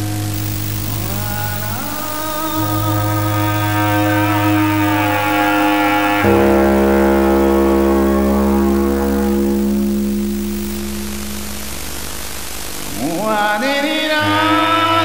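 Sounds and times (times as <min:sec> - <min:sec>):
deep bass drone: 0:00.0 - 0:13.1
music of long held chords: 0:00.0 - 0:15.0.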